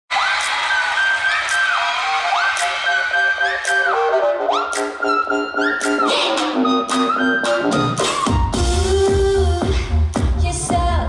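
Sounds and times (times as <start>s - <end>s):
upbeat pop dance track: 0.2s - 11.0s.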